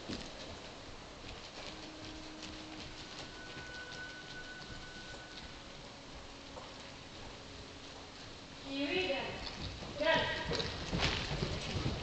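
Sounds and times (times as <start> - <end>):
horse hoofbeats on soft footing: 0.0 - 12.0.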